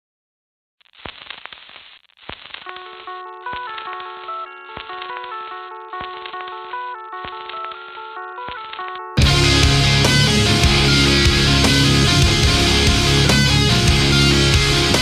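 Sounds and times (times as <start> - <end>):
crackly noise: 0.8 - 9.1
picked guitar melody: 2.8 - 15.0
drum hits: 9.2 - 15.0.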